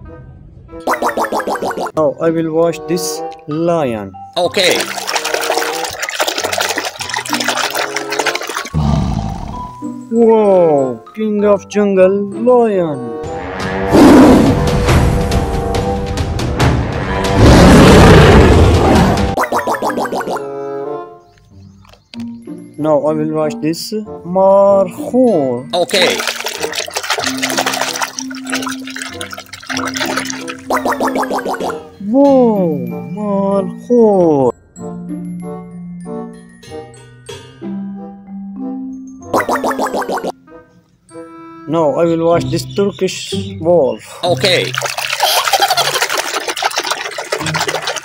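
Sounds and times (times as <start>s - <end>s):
background music held tones: 0.0s - 5.9s, 8.8s - 17.8s, 19.4s - 44.8s
water splashing in a basin: 0.9s - 1.9s, 4.4s - 8.8s, 19.4s - 20.4s, 25.8s - 31.8s, 39.4s - 40.3s, 44.2s - 48.0s.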